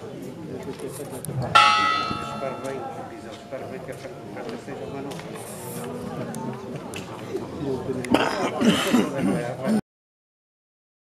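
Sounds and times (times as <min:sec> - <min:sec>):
church bell strike: 0:01.6 - 0:04.6.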